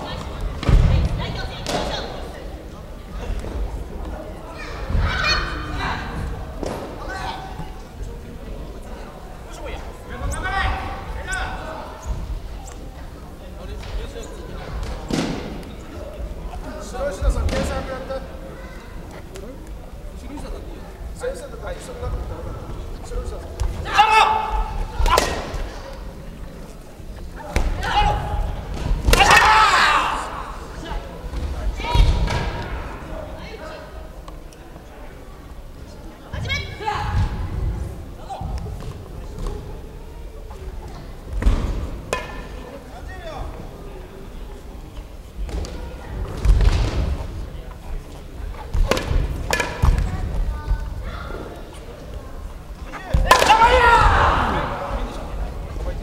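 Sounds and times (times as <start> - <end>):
voices: 0.0 - 56.0.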